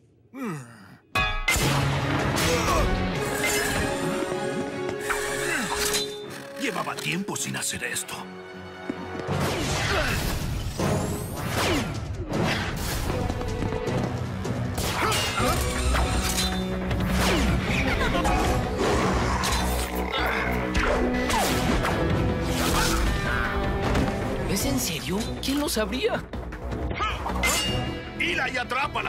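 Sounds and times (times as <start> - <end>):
cartoon action music: 14.7 - 24.0.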